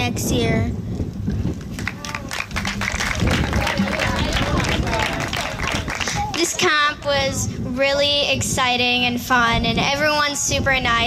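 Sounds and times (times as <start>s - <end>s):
hand claps: 1.5s - 6.6s
voices talking: 1.9s - 7.4s.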